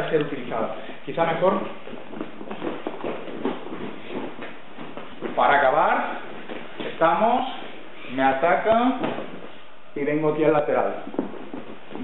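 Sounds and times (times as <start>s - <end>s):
heavy cloth rustling: 0.0s - 9.9s, 10.6s - 12.0s
soft footsteps: 0.0s - 12.0s.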